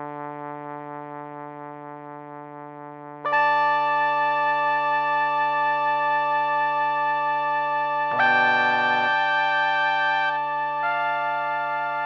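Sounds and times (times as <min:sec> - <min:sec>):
sustained instrumental note: 0:08.1 - 0:10.4.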